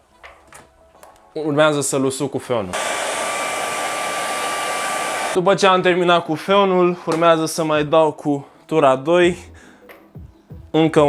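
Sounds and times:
hair dryer running: 0:02.7 - 0:05.4.

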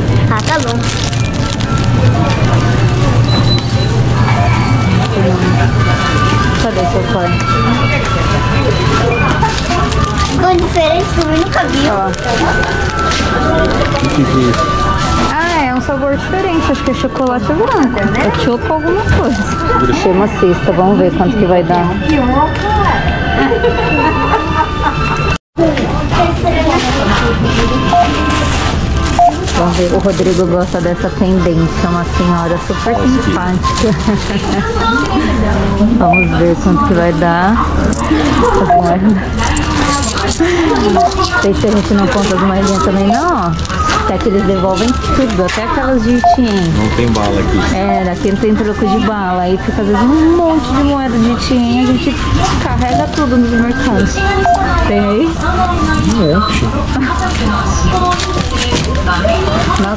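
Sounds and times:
checkout beeps: 0:00.0 - 0:59.9
faint voices: 0:00.0 - 0:59.9
steady low hum: 0:00.0 - 0:59.9
background music: 0:04.1 - 0:59.9.

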